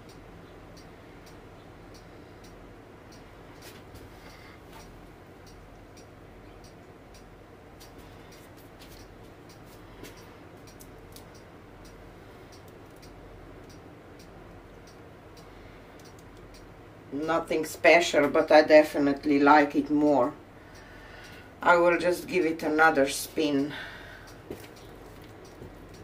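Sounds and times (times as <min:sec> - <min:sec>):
faint light ticks: 0:00.0 - 0:16.8
low room noise: 0:00.0 - 0:26.0.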